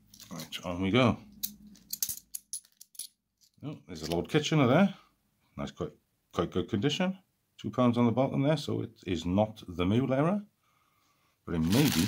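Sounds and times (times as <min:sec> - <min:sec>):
coins clinking: 0:01.4 - 0:03.2.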